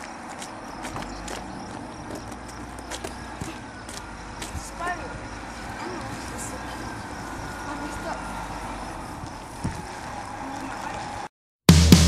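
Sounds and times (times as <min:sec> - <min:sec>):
bus engine rumbling: 0:00.0 - 0:11.3
faint voices: 0:03.1 - 0:11.3.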